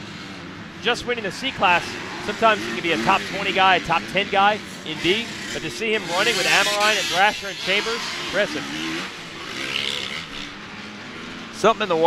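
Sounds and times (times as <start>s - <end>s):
dirt bike engines droning: 0.0s - 12.0s.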